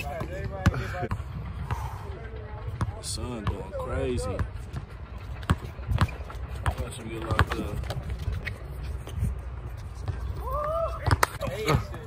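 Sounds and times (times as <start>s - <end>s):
distant players' voices: 0.0s - 12.0s.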